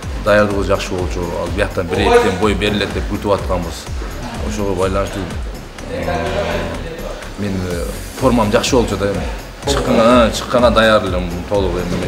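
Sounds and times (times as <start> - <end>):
faint background music: 0.0 - 12.0
man speaking: 0.2 - 12.0.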